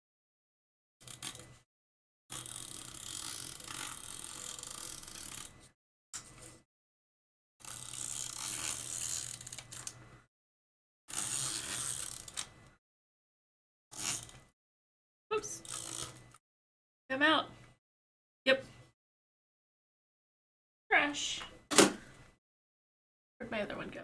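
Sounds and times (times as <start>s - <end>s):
tape runner ratcheting on paper: 1.0s - 1.6s, 2.3s - 5.6s, 7.6s - 10.0s, 11.1s - 12.5s, 13.9s - 14.5s, 15.6s - 16.4s.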